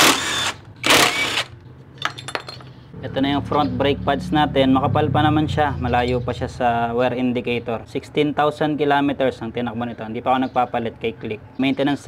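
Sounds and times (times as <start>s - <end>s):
impact wrench running: 0.0s - 1.5s.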